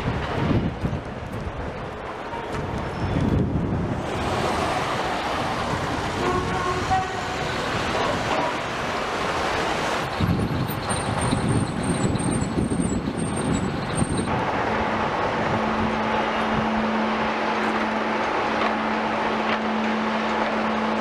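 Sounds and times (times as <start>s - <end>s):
bus: 0.0s - 21.0s
city street traffic: 0.0s - 21.0s.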